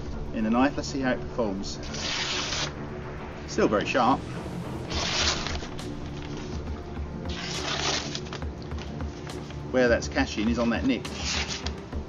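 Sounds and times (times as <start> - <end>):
blade slicing paper: 1.8 - 2.8, 4.9 - 6.6, 7.2 - 9.5, 10.7 - 11.9.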